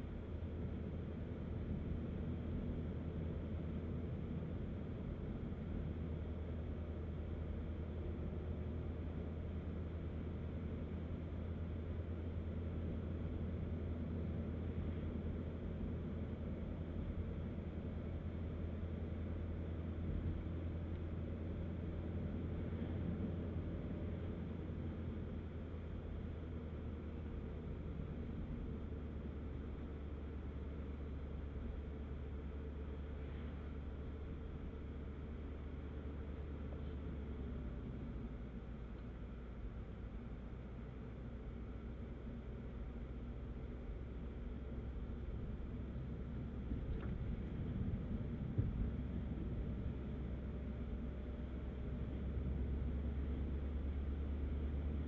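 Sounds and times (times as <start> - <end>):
car engine drone: 0.0 - 55.0
road noise inside car: 0.0 - 55.0.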